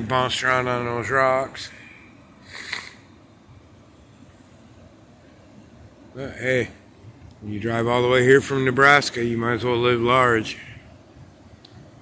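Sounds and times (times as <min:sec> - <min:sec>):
breathy puff on microphone: 0:02.4 - 0:03.0.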